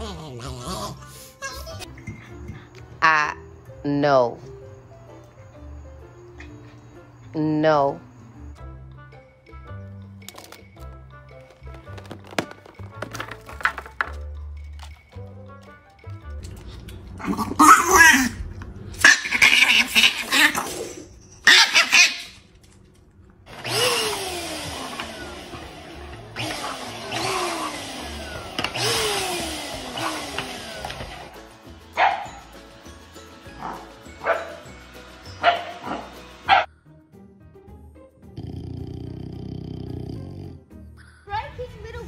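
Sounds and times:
music: 0.0s - 19.5s, 20.5s - 42.0s
dog barking: 21.4s - 22.4s, 32.0s - 32.4s, 33.6s - 34.7s, 35.4s - 36.7s.

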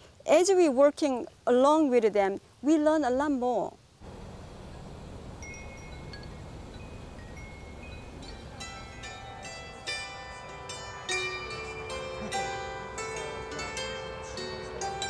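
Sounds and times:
low steady background noise: 0.0s - 15.0s
metal wind chime ringing: 5.4s - 15.0s.

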